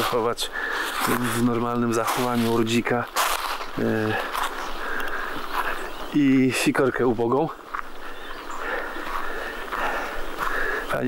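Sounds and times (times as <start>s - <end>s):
faint outdoor hiss: 0.0s - 11.0s.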